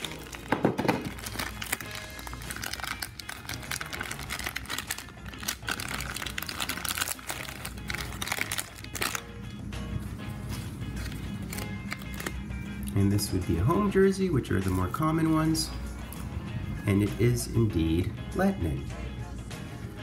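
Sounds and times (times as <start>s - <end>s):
plastic bag crinkling: 0.0s - 9.2s, 11.0s - 12.4s
background music: 0.0s - 20.0s.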